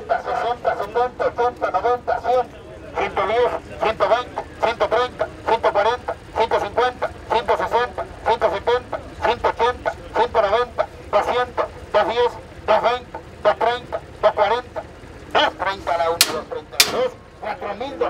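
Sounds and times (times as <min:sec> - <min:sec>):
auctioneer chanting over loudspeaker: 0:00.0 - 0:18.0.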